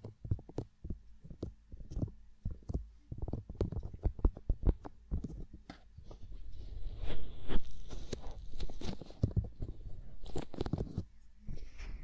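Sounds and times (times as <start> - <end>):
fingertips tapping on microphone: 0.0 - 5.9.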